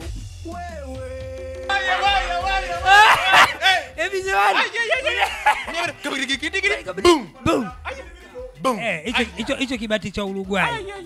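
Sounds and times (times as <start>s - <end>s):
man's voice: 0.0s - 11.0s
man chuckling: 2.8s - 6.4s.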